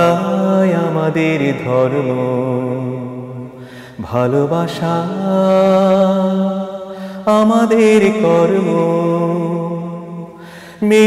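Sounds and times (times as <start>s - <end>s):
man singing ornamented notes: 0.0s - 11.0s.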